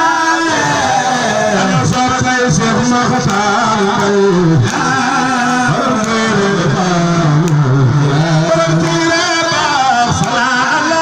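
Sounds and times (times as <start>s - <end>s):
man chanting into a microphone: 0.0s - 11.0s.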